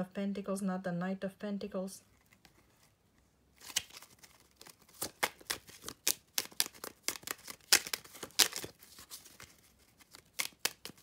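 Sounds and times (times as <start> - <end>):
playing cards being shuffled: 3.6 - 11.0.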